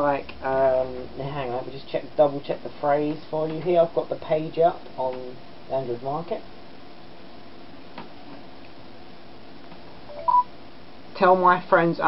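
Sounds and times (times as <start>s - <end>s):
two-note electronic beep: 10.1s - 10.5s.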